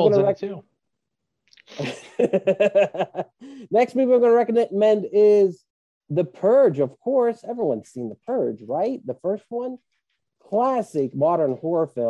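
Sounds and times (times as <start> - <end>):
person laughing: 1.7 - 3.7.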